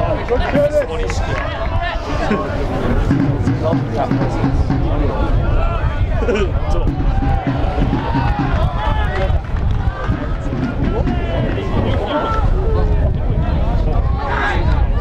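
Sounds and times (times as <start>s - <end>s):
people shouting and talking: 0.0s - 15.0s
steady low rumble: 1.9s - 14.2s.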